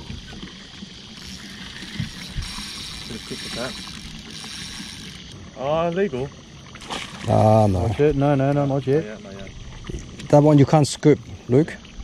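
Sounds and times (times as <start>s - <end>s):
fishing reel whirring: 0.0s - 6.8s.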